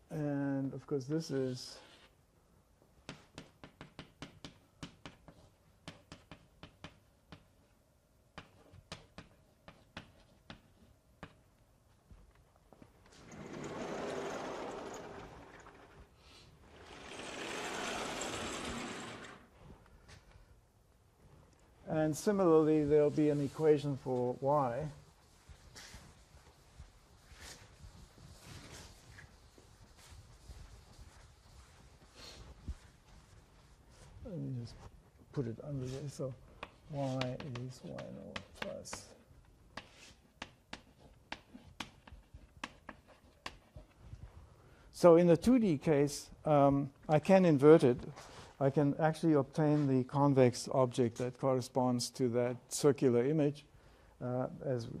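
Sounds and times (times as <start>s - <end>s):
chalk clicking on blackboard: 3.1s - 7.5s, 8.3s - 11.4s, 36.6s - 43.7s
chalkboard panels sliding: 13.1s - 19.6s.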